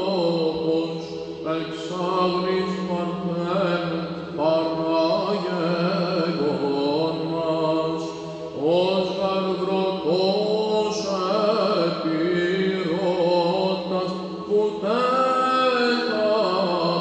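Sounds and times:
low held vocal drone: 0:00.0 - 0:17.0
man chanting solo: 0:00.0 - 0:17.0.

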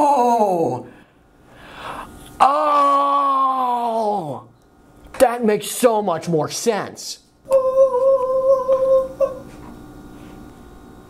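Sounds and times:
person singing a held note: 0:07.5 - 0:09.5.

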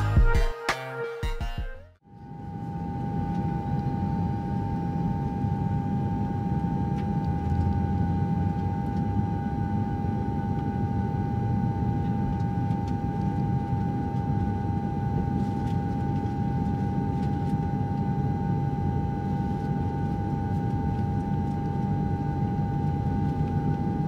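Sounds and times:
airliner cabin rumble and whine: 0:02.2 - 0:24.0.

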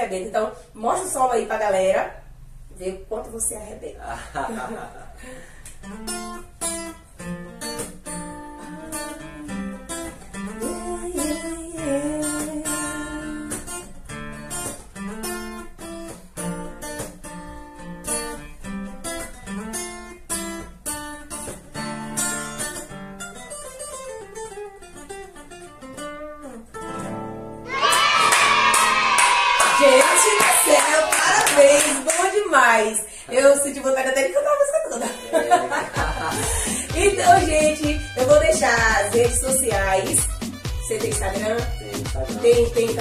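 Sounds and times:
acoustic guitar playing: 0:04.3 - 0:43.0
people clapping: 0:27.7 - 0:32.6, 0:35.6 - 0:38.4.

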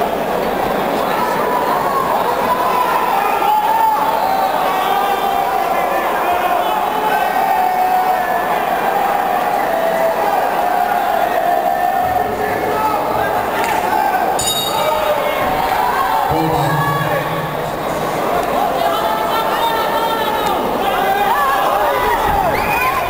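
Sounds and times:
crowd talking and shouting: 0:00.0 - 0:23.0
high ringing: 0:14.4 - 0:15.4.

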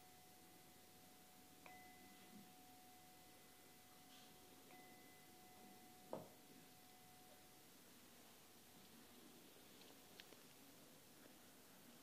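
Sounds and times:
bowl bell ringing: 0:00.0 - 0:07.7.

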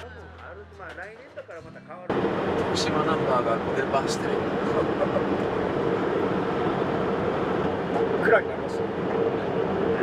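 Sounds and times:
road noise: 0:00.0 - 0:10.0
constant hum: 0:02.1 - 0:10.0
truck engine: 0:02.1 - 0:10.0.

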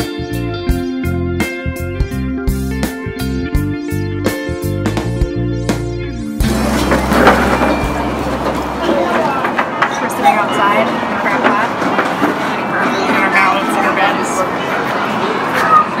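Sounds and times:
guitar music: 0:00.5 - 0:11.2
indistinct voices: 0:06.5 - 0:16.0.

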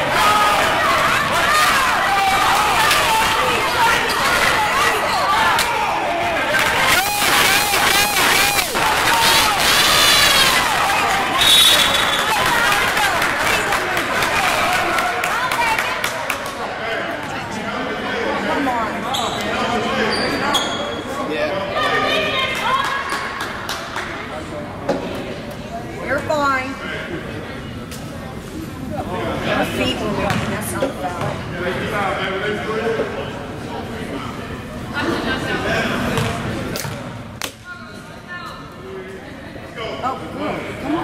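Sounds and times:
players and spectators shouting: 0:00.0 - 0:16.0
whistle blast: 0:11.4 - 0:12.4
sneakers squeaking: 0:19.1 - 0:21.2, 0:30.3 - 0:30.5, 0:36.2 - 0:37.0
ball bouncing on hardwood court: 0:30.3 - 0:30.5.

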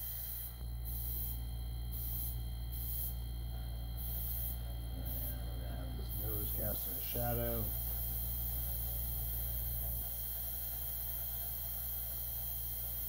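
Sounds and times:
airbrush hissing spurts: 0:00.0 - 0:03.2, 0:04.0 - 0:13.0
airbrush compressor humming: 0:00.0 - 0:13.0.

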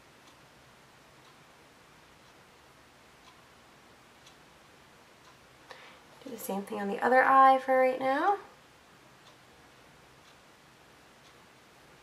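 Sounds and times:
faint ticks: 0:00.2 - 0:00.5, 0:03.2 - 0:03.6, 0:04.2 - 0:04.5, 0:09.2 - 0:10.5.

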